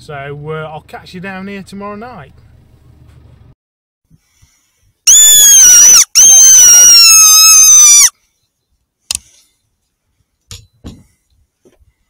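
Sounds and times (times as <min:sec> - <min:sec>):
high-pitched lure call squeals: 0:05.1 - 0:08.1.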